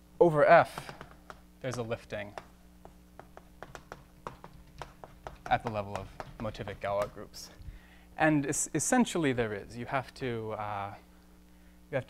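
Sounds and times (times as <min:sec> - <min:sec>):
chalk tapping on blackboard: 0:00.6 - 0:07.5.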